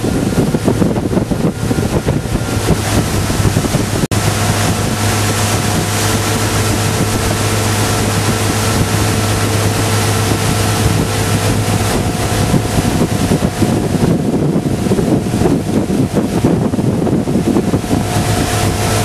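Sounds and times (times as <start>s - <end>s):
motorboat engine running: 0.0s - 19.0s
rushing water: 0.0s - 19.0s
wind buffeting microphone: 0.0s - 19.0s.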